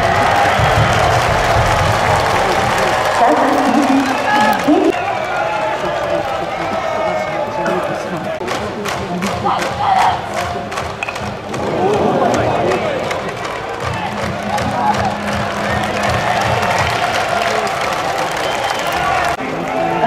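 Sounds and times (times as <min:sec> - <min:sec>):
crowd chanting and shouting: 0:00.0 - 0:20.0.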